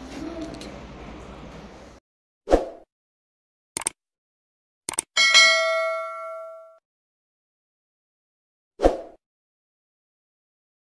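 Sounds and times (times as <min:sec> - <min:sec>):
quick clicks: 0:03.8 - 0:04.0, 0:04.9 - 0:05.1
bell-like ding: 0:05.2 - 0:06.8.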